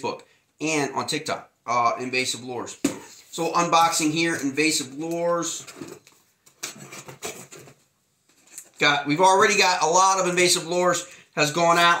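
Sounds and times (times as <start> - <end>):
hands scraping cardboard box: 6.6 - 7.9.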